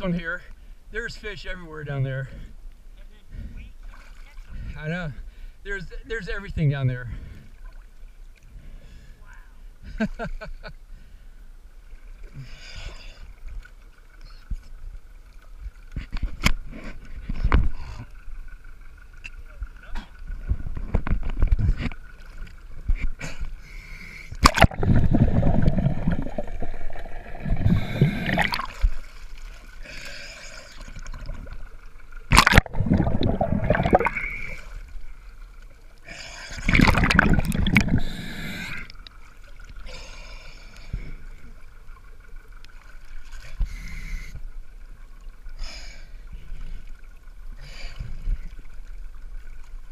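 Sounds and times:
water sloshing and splashing: 0:03.8 - 0:04.8, 0:11.8 - 0:43.8.

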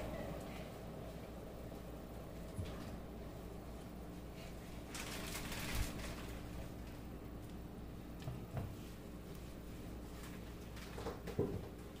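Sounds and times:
rustling handling noise: 0:04.1 - 0:07.6.

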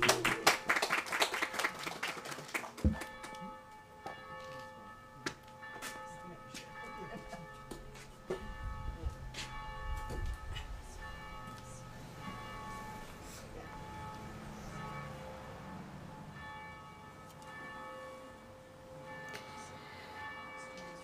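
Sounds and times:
bells ringing: 0:02.9 - 0:21.0.

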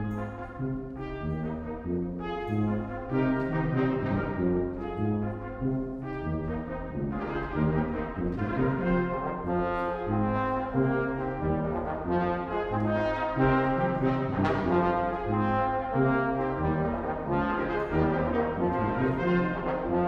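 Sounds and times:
brass quintet playing chords: 0:00.0 - 0:20.0.

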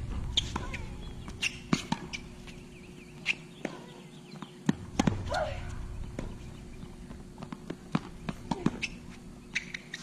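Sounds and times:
footsteps on hard court: 0:03.6 - 0:09.7.

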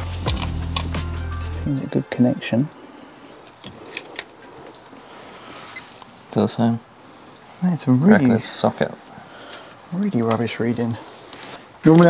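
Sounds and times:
quiet room noise: 0:00.0 - 0:12.0.

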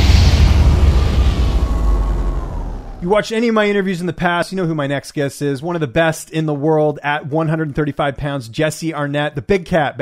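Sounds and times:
deep cinematic rumble: 0:00.0 - 0:03.2.

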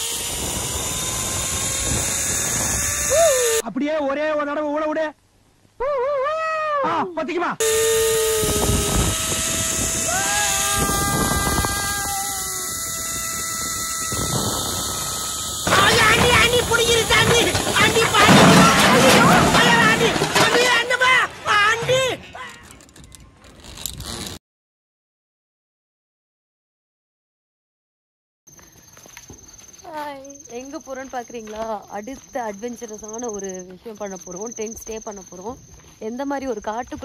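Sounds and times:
crickets trilling: 0:00.0 - 0:03.6, 0:07.6 - 0:22.6, 0:28.5 - 0:37.0
wind noise: 0:00.0 - 0:03.6, 0:07.6 - 0:20.0
zipline pulleys whining on cable: 0:00.0 - 0:03.6, 0:07.6 - 0:18.6, 0:22.3 - 0:24.4.

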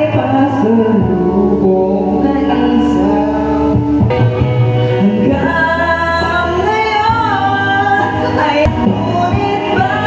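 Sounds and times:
man singing into microphone: 0:00.0 - 0:04.2, 0:04.9 - 0:10.0
music backing track: 0:00.0 - 0:10.0.

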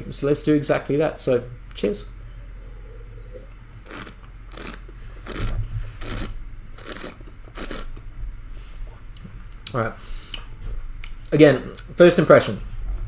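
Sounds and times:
person sipping wine: 0:02.6 - 0:08.0.

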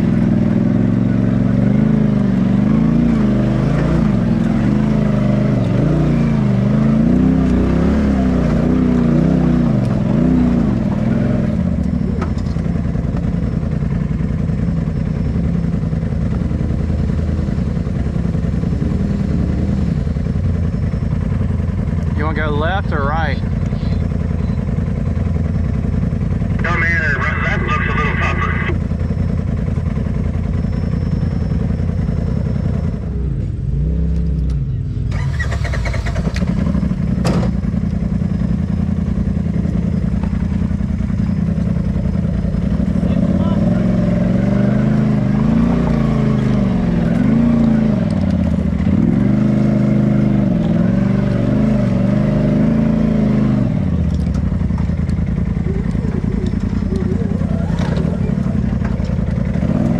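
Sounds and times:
off-road vehicle engine revving: 0:00.0 - 0:59.9.

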